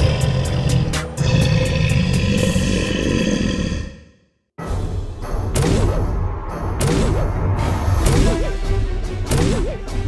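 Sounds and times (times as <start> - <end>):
background music: 0.0 - 2.8, 4.6 - 10.0
dinosaur roar: 0.0 - 4.2.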